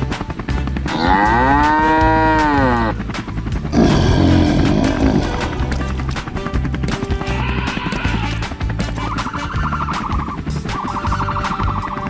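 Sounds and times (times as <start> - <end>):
background music with steady beat: 0.0 - 12.0
cartoon cow mooing: 0.9 - 2.9, 3.7 - 6.3.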